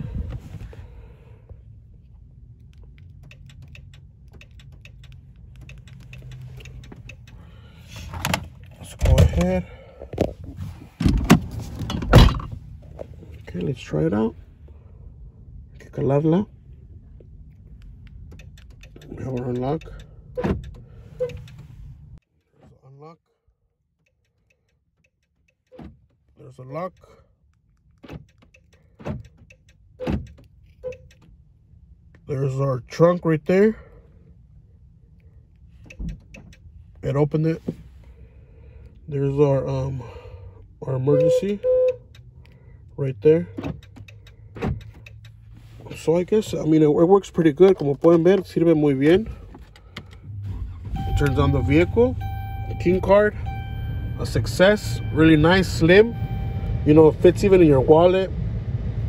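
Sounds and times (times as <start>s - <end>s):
car engine idling: 0.0s - 11.0s, 11.6s - 22.2s, 33.5s - 59.0s
small clicks: 2.6s - 7.4s
car door locks thunking: 43.5s - 45.1s.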